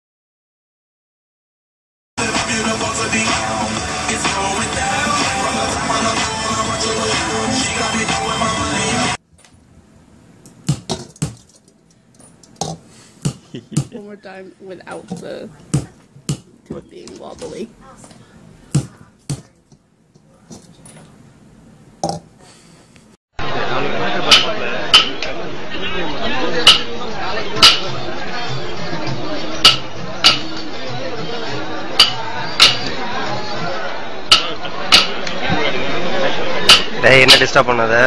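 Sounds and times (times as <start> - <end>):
voices chattering: 13.5 - 20.8, 23.4 - 38.0.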